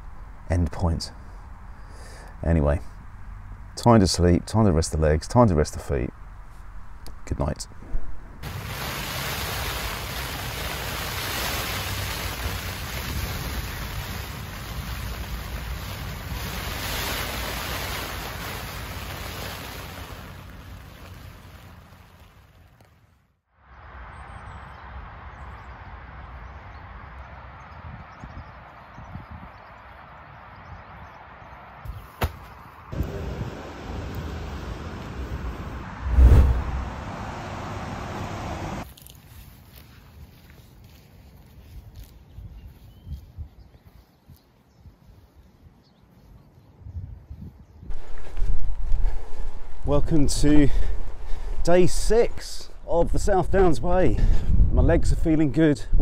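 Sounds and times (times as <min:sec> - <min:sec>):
outdoor hiss: 0:00.0 - 0:03.9, 0:08.4 - 0:23.0, 0:32.2 - 0:38.9, 0:47.9 - 0:54.6
heavy rain drumming on a tent: 0:08.4 - 0:22.4, 0:47.9 - 0:49.9.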